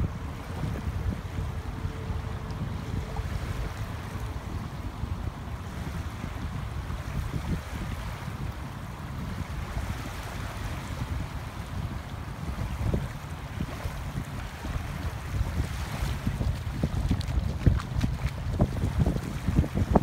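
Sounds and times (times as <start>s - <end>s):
small waves lapping: 0.0s - 20.0s
wind buffeting microphone: 0.0s - 20.0s.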